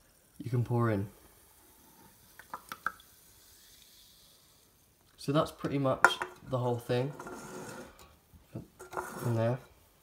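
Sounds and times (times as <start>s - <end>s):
faint fizzing hiss: 0.0s - 10.0s.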